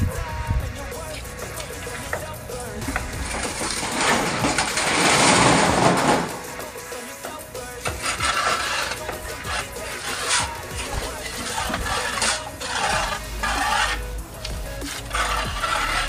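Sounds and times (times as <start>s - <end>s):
background music: 0.0s - 16.0s
trowel scraping mortar: 0.9s - 16.0s.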